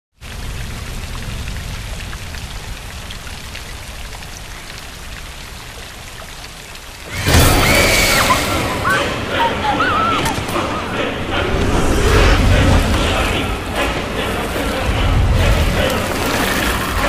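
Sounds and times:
heavy rain falling: 0.1 - 17.0
raindrops ticking: 0.2 - 7.2
sudden loud sound: 7.1 - 9.2
low rumble: 7.5 - 17.0.

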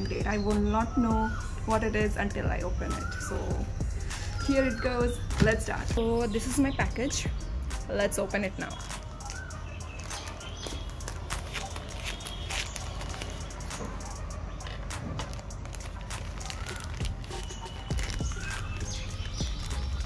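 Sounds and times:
plastic mailer bag crinkling: 8.3 - 20.0.

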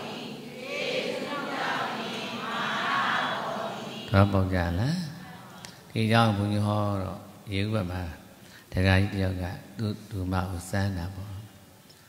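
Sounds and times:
many voices reciting in unison: 0.0 - 6.6.

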